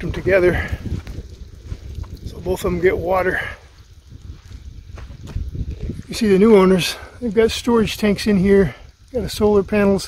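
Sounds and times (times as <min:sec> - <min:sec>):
wind rumble on microphone: 0:00.0 - 0:10.0
footsteps on dirt: 0:00.6 - 0:02.7, 0:03.7 - 0:06.2.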